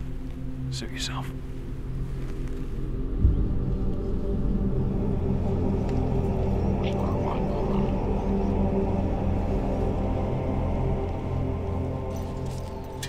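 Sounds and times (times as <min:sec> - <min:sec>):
deep sci-fi drone: 0:00.0 - 0:13.0
low thud: 0:03.2 - 0:04.0.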